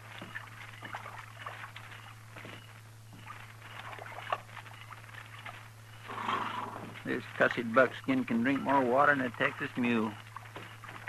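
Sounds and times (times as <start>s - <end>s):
horses drinking water: 0.0s - 11.0s
low recording hum: 0.0s - 11.0s
small splashes and knocks: 0.0s - 11.0s
horse blowing breath: 6.1s - 6.9s.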